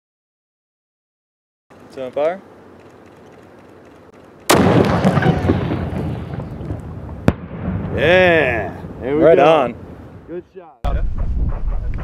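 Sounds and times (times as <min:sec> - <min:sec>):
sharp crack: 0:02.8 - 0:08.5
rocket launcher blast: 0:04.5 - 0:08.3.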